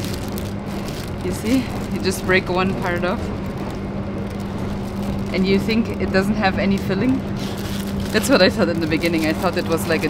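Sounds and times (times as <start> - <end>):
constant low hum: 0.0 - 10.0
train carriage rumble: 0.0 - 10.0.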